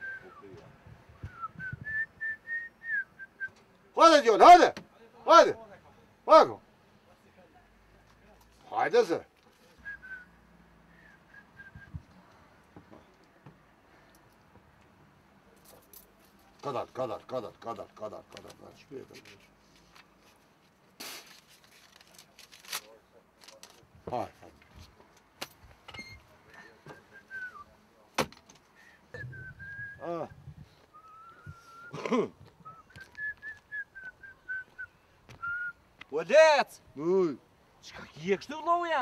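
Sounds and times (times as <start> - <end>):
person whistling: 1.2 - 3.6, 10.9 - 12.1, 29.1 - 32.0, 32.6 - 35.8.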